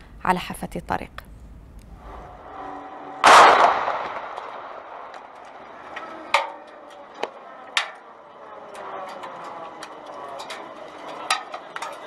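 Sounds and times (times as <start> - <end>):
car bomb explosion: 3.2 - 5.3
sharp crack: 3.2 - 8.2.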